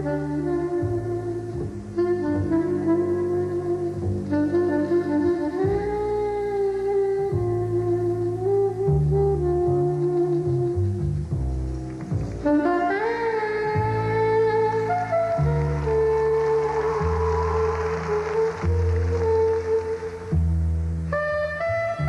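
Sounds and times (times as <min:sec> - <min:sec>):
slow blues melody: 0:00.0 - 0:22.0.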